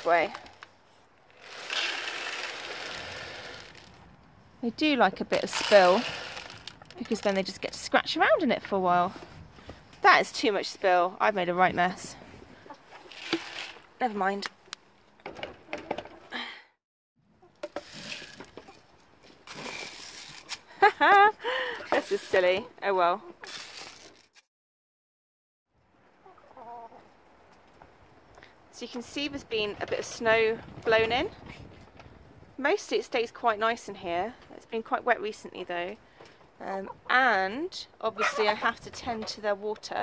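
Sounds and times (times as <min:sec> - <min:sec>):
pellets poured into plastic feeder: 0:01.4 - 0:03.9, 0:05.4 - 0:06.8, 0:13.1 - 0:13.8, 0:17.8 - 0:18.4, 0:19.6 - 0:20.5
person laughing: 0:20.7 - 0:21.9.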